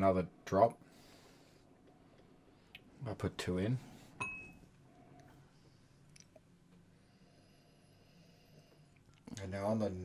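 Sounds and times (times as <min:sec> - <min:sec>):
glass clinking: 0:04.2 - 0:04.6.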